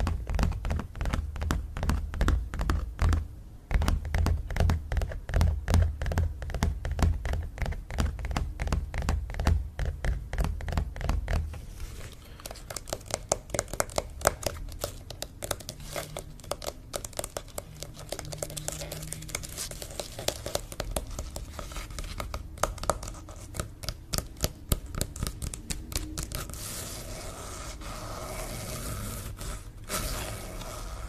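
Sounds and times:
fingers tapping on canvas: 0.0 - 11.6, 12.4 - 26.9.

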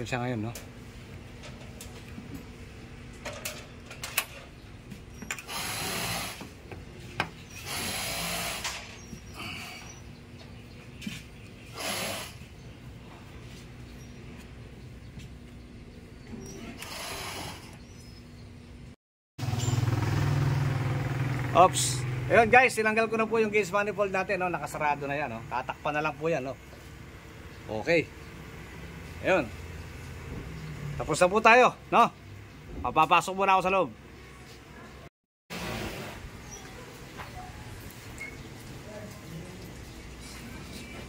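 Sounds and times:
refrigerant hissing: 5.4 - 6.6, 7.4 - 10.0, 11.6 - 12.5.

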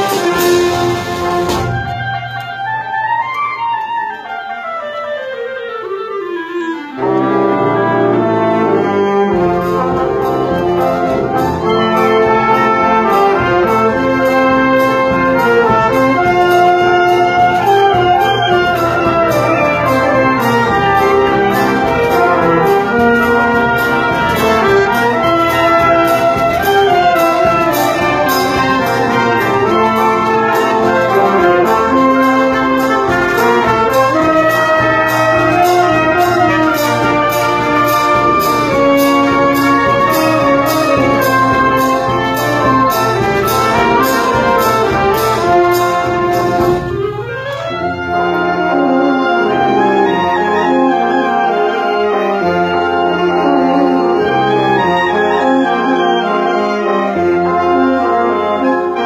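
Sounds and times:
percussion strokes: 0.0 - 4.2, 6.6 - 50.9
brass band playing a march: 0.0 - 59.0.

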